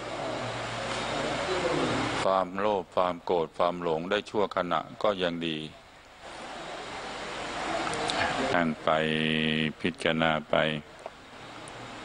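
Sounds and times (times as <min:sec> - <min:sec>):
man speaking into a microphone: 0:02.2 - 0:05.8, 0:08.2 - 0:10.9.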